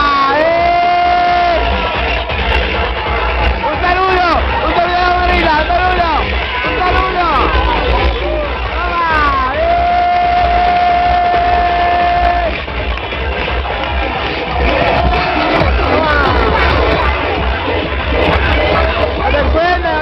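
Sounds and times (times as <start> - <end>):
loud dance music: 0.0 - 20.0
people shouting and cheering: 0.0 - 20.0.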